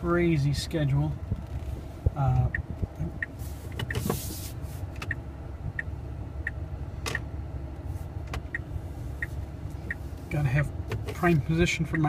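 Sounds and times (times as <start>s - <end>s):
low cabin rumble: 0.0s - 12.0s
parking sensor beeps: 8.5s - 10.1s.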